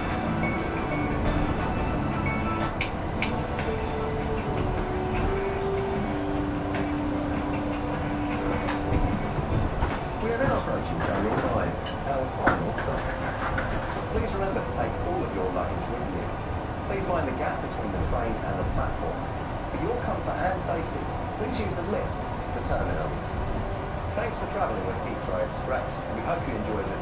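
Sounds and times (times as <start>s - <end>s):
train motor whine: 0.0s - 11.2s
electric train running rumble: 0.0s - 27.0s.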